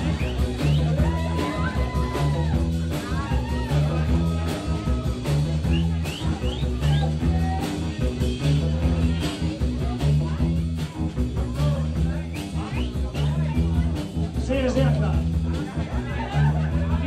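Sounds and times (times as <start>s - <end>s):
electric guitar: 0.0s - 17.0s
live band playing: 0.0s - 17.0s.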